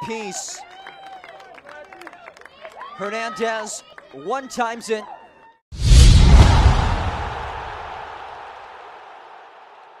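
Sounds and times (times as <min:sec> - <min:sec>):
deep boom hit: 0:05.8 - 0:08.1.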